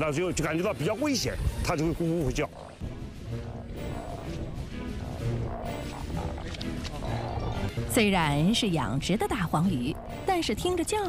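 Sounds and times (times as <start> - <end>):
background music: 0.0 - 11.0
fish croaking: 2.3 - 7.7.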